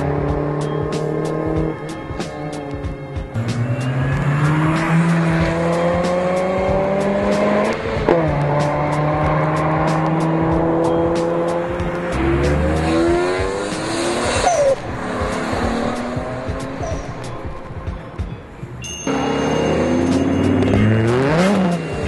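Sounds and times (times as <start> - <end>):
car engine revving: 0.0 - 17.9, 19.1 - 22.0
tyres squealing: 16.6 - 21.9.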